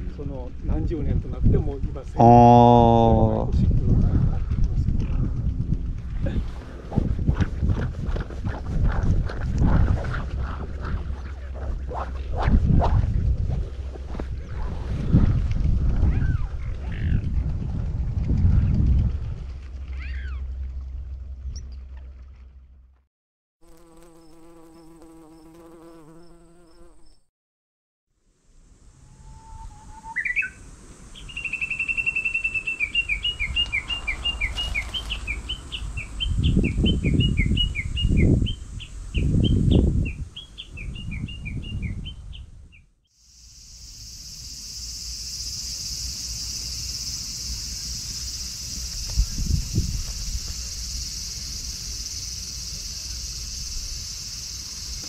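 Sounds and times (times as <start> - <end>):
wind rumbling on microphone: 0.0 - 22.6, 33.0 - 42.8, 48.4 - 52.1
bird chirping rapidly: 31.2 - 42.4
high insect drone: 43.2 - 55.0.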